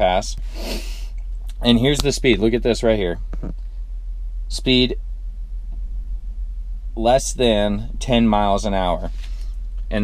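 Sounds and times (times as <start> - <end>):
low rumble inside truck cab: 0.0 - 10.0.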